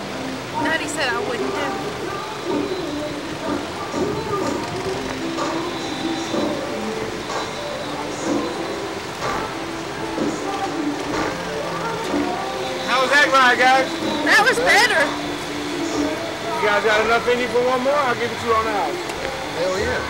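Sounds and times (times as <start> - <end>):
background music with held notes: 0.0 - 20.0
indistinct voices: 0.0 - 20.0.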